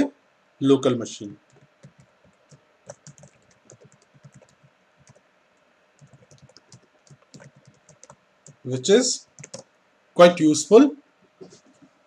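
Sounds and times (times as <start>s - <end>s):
keyboard typing: 1.4s - 5.2s, 6.0s - 9.7s.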